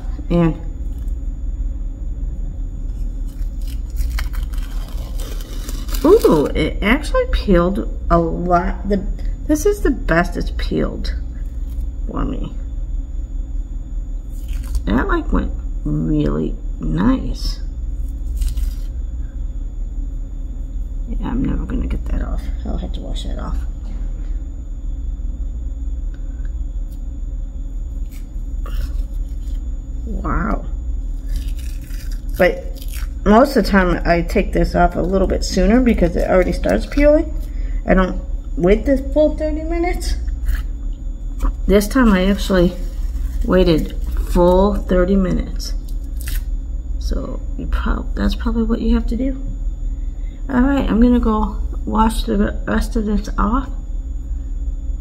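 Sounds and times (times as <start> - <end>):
steady low rumble: 0.0 - 55.0
face mask peeling off skin: 2.9 - 6.5, 14.3 - 14.9, 18.0 - 19.0, 28.0 - 29.7, 31.0 - 33.2, 42.1 - 44.8, 45.8 - 46.5.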